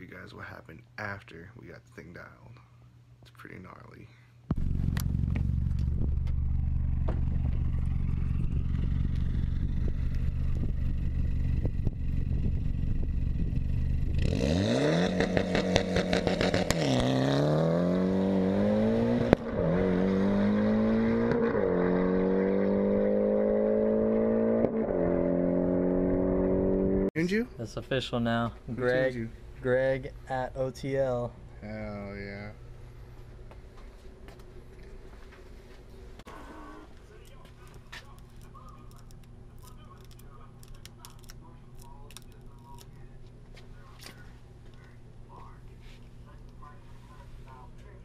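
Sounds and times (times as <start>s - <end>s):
car engine idling: 4.5s - 14.2s
car accelerating through gears: 14.2s - 27.1s.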